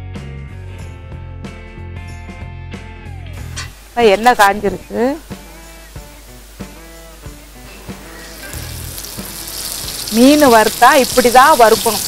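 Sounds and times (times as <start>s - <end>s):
background music with steady beat: 0.0s - 10.2s
fish sizzling in hot oil: 3.4s - 12.0s.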